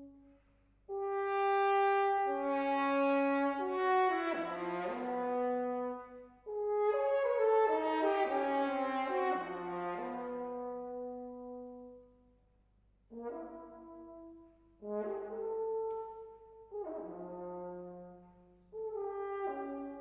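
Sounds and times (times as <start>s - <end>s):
french horn playing: 0.9s - 12.1s, 13.1s - 20.0s.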